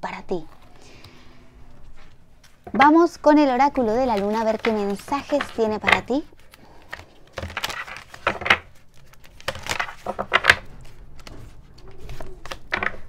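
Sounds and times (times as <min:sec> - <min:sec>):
cards shuffling: 0:00.5 - 0:13.0.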